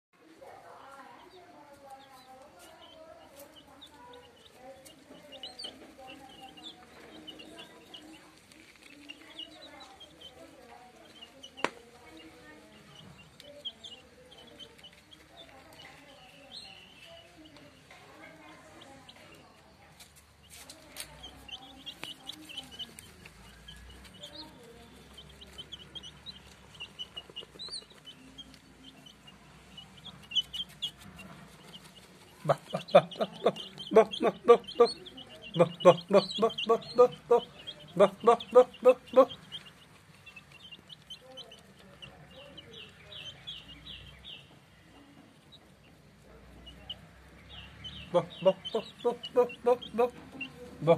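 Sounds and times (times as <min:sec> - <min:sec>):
young chickens peeping: 0:00.3 - 0:50.9.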